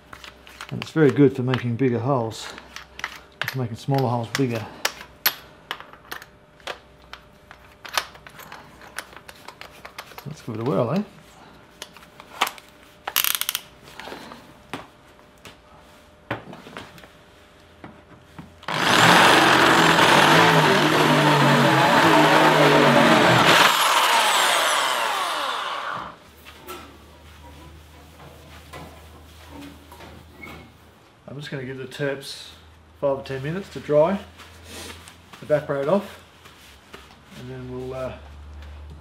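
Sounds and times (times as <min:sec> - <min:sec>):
drill motor winding down: 0:18.6 - 0:26.2
electric drill boring through plate: 0:18.6 - 0:26.2.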